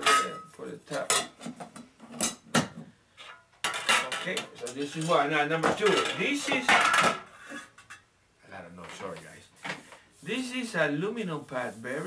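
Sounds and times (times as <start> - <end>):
metal tin and pot clinking: 0.0 - 1.4.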